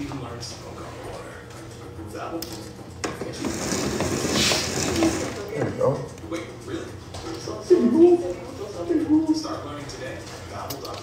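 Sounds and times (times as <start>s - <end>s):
roller blind rattling: 3.1s - 5.6s
roller blind click: 3.2s - 5.5s.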